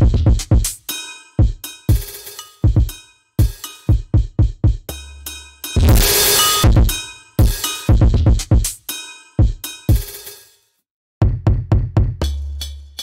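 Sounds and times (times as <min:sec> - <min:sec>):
hip-hop drum beat: 0:00.0 - 0:10.5, 0:11.2 - 0:13.0
bright cymbal-like hit: 0:05.3 - 0:07.9.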